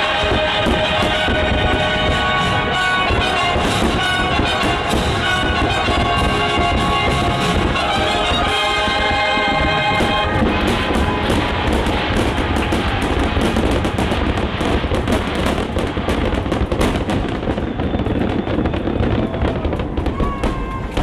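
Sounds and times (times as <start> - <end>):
fireworks crackling: 0.0 - 21.0
low rumble of explosions: 0.0 - 21.0.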